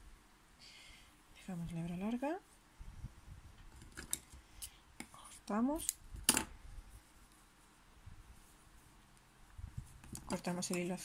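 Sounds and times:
scissors snipping yarn: 5.7 - 6.0.

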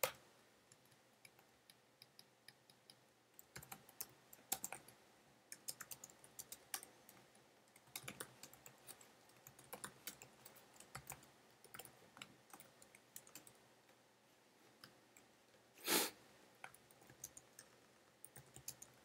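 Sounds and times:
faint typing on keyboard: 0.0 - 14.0, 14.6 - 15.7, 16.5 - 19.0.

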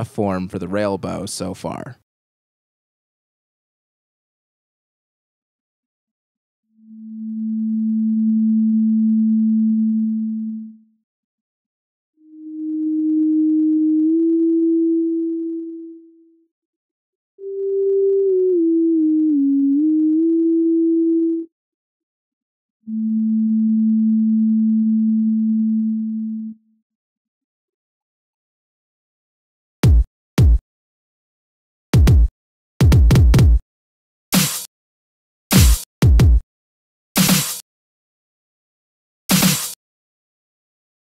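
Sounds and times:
synthesized sine tone: 6.8 - 10.9, 12.2 - 16.4, 17.4 - 21.5, 22.9 - 26.6.

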